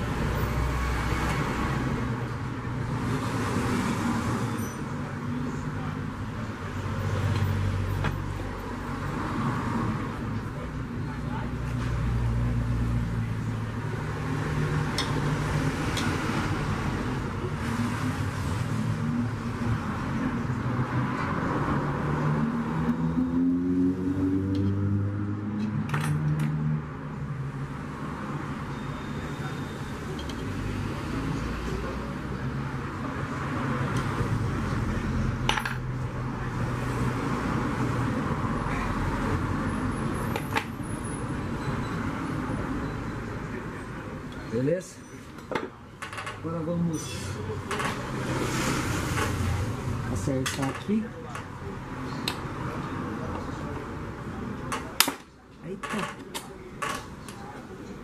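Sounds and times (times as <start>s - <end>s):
road traffic rumble: 0.0s - 58.0s.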